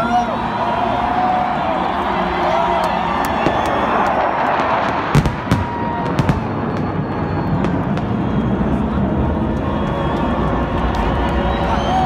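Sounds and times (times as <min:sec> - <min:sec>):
jet noise rush overhead: 0:00.0 - 0:12.0.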